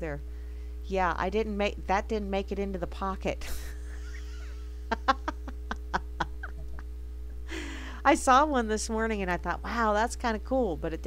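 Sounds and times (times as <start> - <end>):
woman snickering: 3.4 - 6.9.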